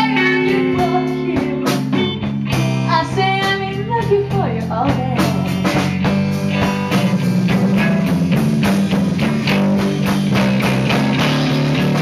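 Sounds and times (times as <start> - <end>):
woman singing: 0.0 - 2.2, 2.9 - 5.8
guitar accompaniment: 0.0 - 12.0.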